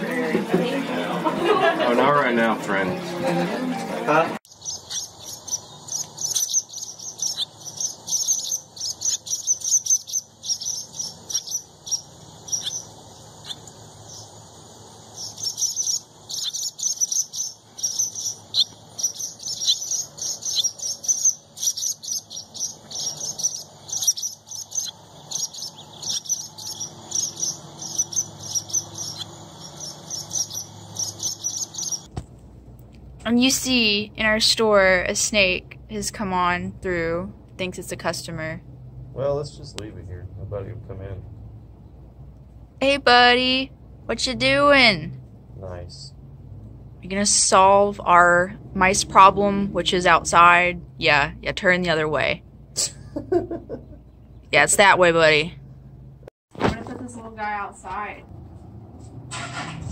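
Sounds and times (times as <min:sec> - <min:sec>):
small birds chirping: 0:04.4 - 0:32.1, 0:33.2 - 0:55.7.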